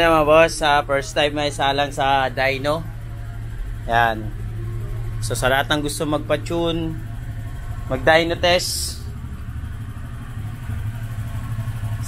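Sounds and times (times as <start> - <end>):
scooter engine idling: 0.0 - 12.0.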